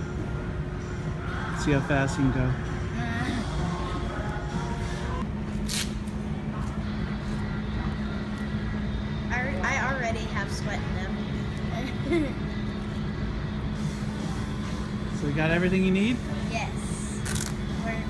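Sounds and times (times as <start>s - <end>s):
store low rumble and hum: 0.0s - 18.0s.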